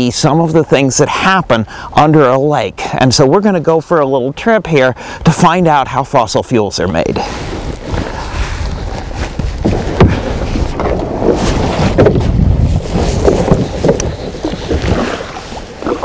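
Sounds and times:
kayak hull knocking and scraping: 0:02.0 - 0:04.5, 0:06.9 - 0:16.0
wind buffeting microphone: 0:06.7 - 0:16.0
paddle strokes: 0:06.8 - 0:16.0
water splashing: 0:06.9 - 0:16.0.

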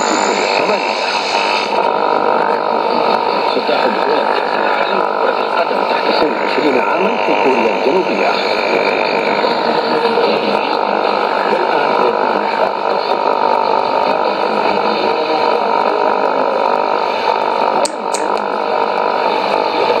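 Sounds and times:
radio static and hum: 0:00.0 - 0:20.0.

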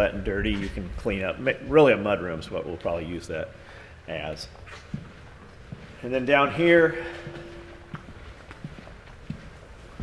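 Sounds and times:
footsteps on hard floor: 0:04.6 - 0:06.1, 0:06.9 - 0:10.0.

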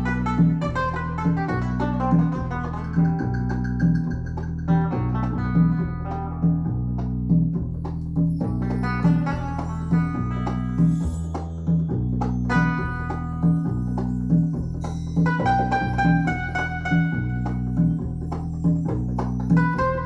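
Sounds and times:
music from loudspeakers: 0:00.0 - 0:20.0
strong low beat: 0:00.0 - 0:20.0.

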